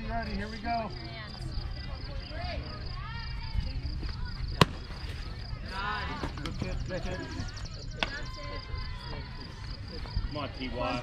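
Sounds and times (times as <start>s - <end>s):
bat hitting ball: 4.6s - 4.8s.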